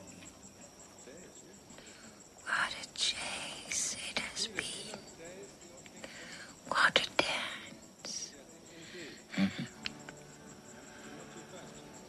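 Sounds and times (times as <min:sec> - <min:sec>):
faint crickets chirping: 0:00.0 - 0:12.0.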